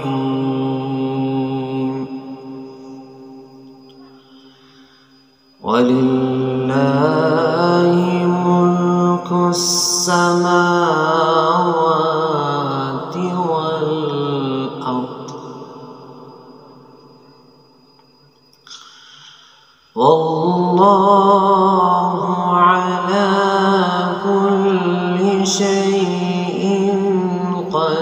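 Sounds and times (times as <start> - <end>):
man reciting melodically: 0.0 - 3.1, 5.6 - 16.2, 19.9 - 28.0.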